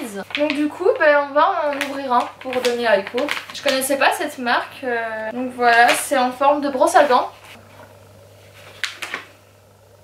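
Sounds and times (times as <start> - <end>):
low steady hum: 0.0 - 10.0
plastic pouch handling noises: 1.6 - 4.0.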